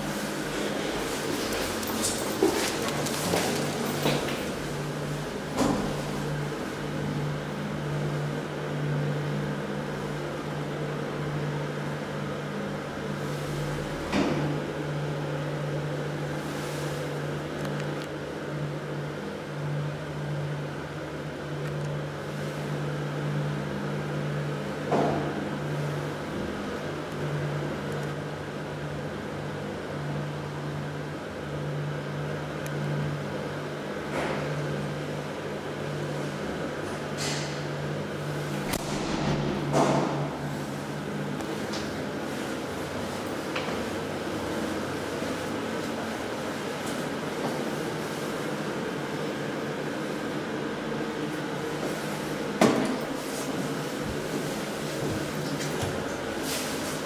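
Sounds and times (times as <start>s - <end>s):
lift motor hum: 0.0s - 57.0s.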